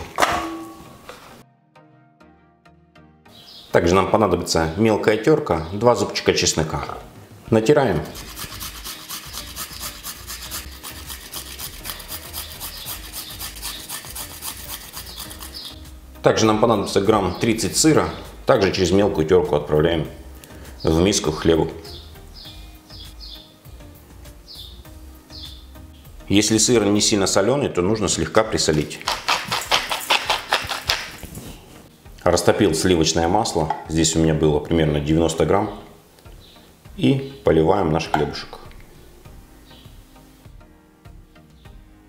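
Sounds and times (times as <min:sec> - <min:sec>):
garlic scraping on metal grater: 0:08.2 - 0:15.8
salt mill grinding: 0:08.2 - 0:15.8, 0:28.7 - 0:31.2.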